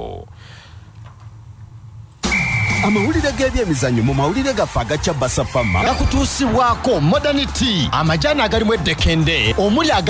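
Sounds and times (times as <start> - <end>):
steady high beep: 2.2 - 4.4, 5.4 - 6.3.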